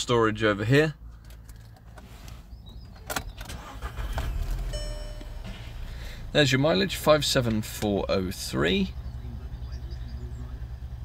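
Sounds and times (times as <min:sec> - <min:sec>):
short electronic chime: 0:04.7 - 0:05.7.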